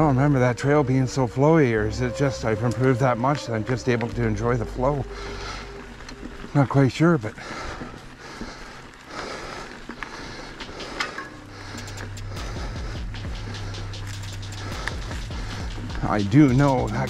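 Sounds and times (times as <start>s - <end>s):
bike tyres on dirt: 0.0s - 17.0s
steady low hum: 0.0s - 17.0s
rattling clicks: 9.8s - 15.9s.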